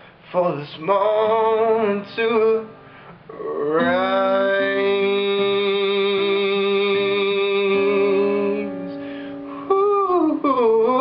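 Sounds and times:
acoustic guitar picking: 0:00.7 - 0:11.0
man singing held note: 0:03.3 - 0:11.0.

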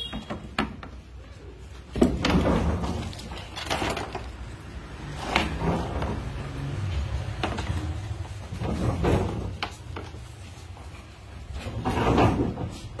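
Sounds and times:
scraping rustle: 0:01.6 - 0:13.0.

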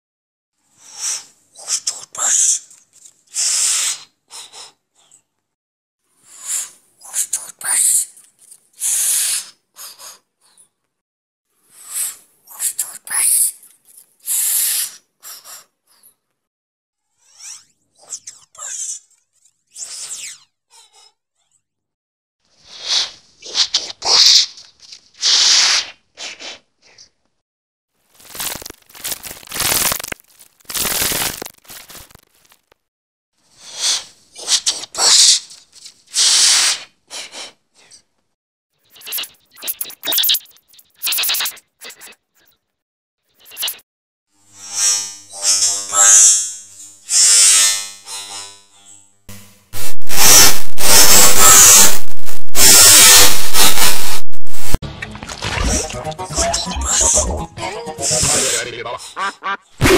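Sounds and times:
harsh distorted noise bursts: 0:28.2 - 0:32.2, 0:49.3 - 0:54.8
high-pitched hissing bursts: 0:49.8 - 0:52.0, 0:52.6 - 0:54.8.

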